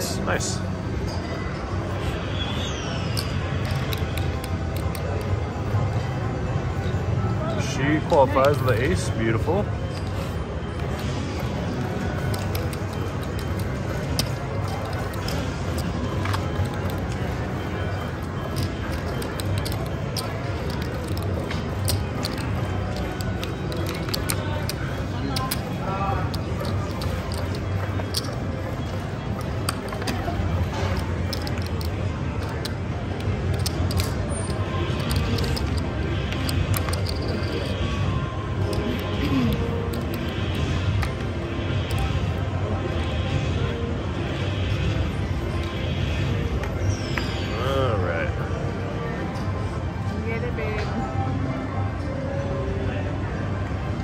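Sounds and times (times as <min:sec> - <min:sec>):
music: 0:00.0 - 0:54.0
cards and chips clicking: 0:01.0 - 0:06.1, 0:07.6 - 0:43.8
murmur of voices: 0:01.6 - 0:54.0.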